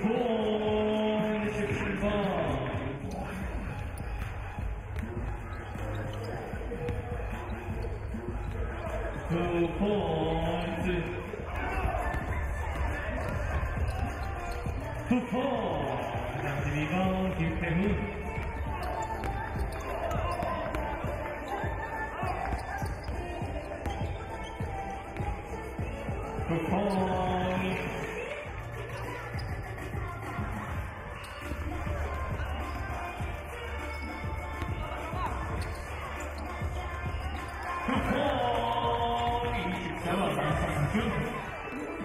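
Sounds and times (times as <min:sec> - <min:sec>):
players shouting: 0:00.0 - 0:42.0
sneakers squeaking: 0:00.0 - 0:42.0.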